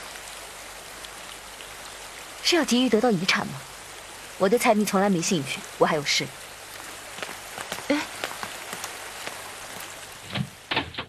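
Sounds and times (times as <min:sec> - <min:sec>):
steady rain falling: 0:00.0 - 0:11.0
ticks of raindrops: 0:00.0 - 0:11.0.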